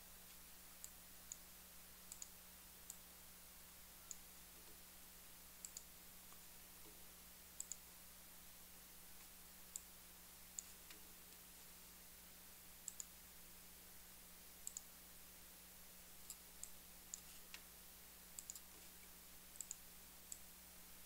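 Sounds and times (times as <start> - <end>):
steady hiss and electrical hum: 0.0 - 21.0
computer mouse clicks: 2.1 - 3.0, 5.6 - 7.0, 7.6 - 7.9, 9.2 - 9.9, 10.5 - 11.4, 12.8 - 13.2, 14.6 - 14.9, 16.2 - 17.7, 18.4 - 20.5.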